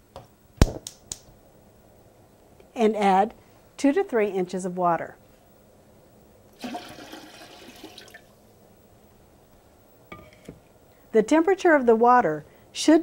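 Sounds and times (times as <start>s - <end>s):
water pouring into metal pot: 6.6s - 8.3s.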